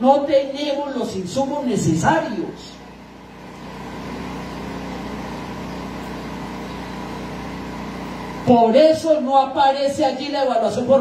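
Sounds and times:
motor hum: 0.0 - 11.0.

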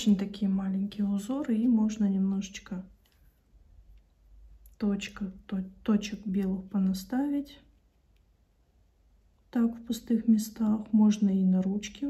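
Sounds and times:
woman speaking: 0.0 - 3.0, 4.7 - 7.7, 9.5 - 12.0.

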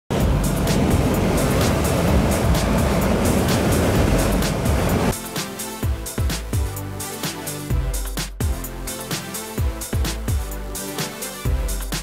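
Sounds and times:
dust collector fan rushing: 0.1 - 6.6
music with a regular beat: 0.1 - 12.0.

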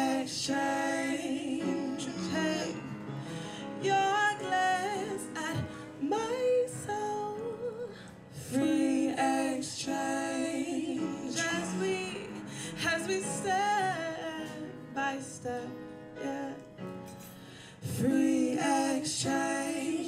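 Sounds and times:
woman singing: 0.0 - 2.9, 3.8 - 16.8
piano accompaniment: 0.0 - 20.0.

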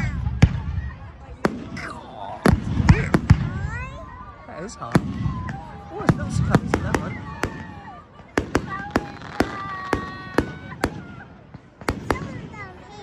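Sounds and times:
fireworks cracking and banging: 0.0 - 13.0.

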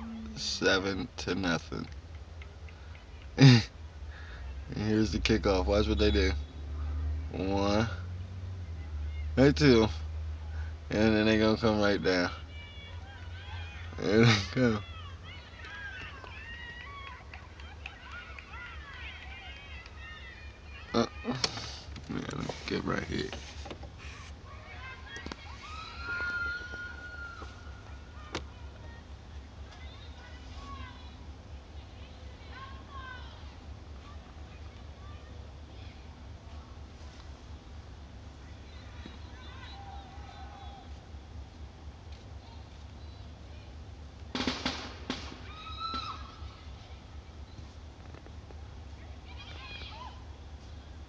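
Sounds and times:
steady low rumble: 0.0 - 21.2
low steady hum: 0.0 - 51.0
girls screaming and shouting: 12.4 - 21.5, 24.4 - 28.6, 45.3 - 46.8
distant girls' voices: 12.4 - 43.9.

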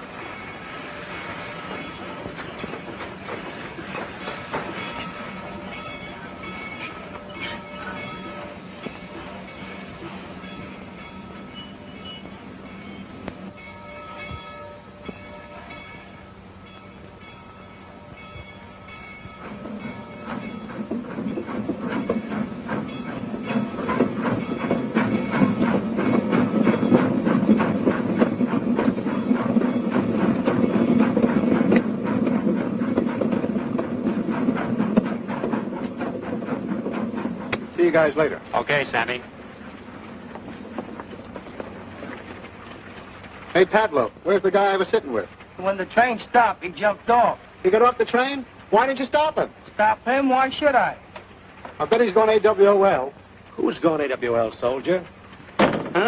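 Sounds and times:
train wheels clattering on rails: 0.0 - 56.0.

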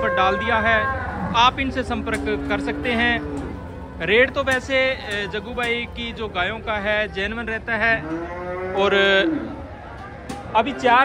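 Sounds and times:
cow mooing: 0.0 - 3.9, 7.8 - 9.6.

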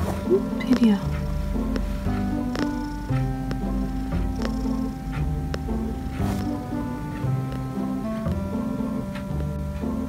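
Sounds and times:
cat purring: 0.0 - 10.0
music with evenly struck notes: 0.0 - 10.0.

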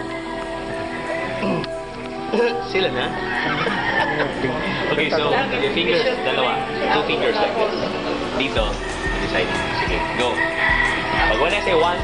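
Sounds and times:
people laughing: 2.4 - 6.2.

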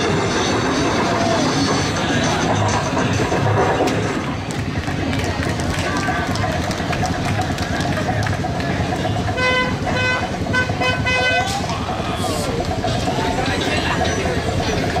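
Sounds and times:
crowd voices: 0.0 - 15.0
passing vehicles: 0.0 - 15.0
vehicle horn short toots: 9.3 - 11.6.

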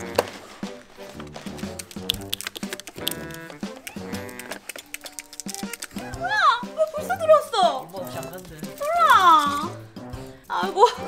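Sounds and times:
light background music: 0.0 - 11.0
dog whining: 3.1 - 5.2.

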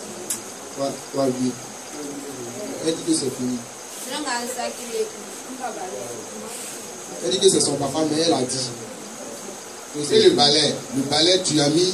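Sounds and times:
faint speech: 0.0 - 3.4, 4.0 - 11.1
steady high-pitched whine: 0.0 - 11.9.

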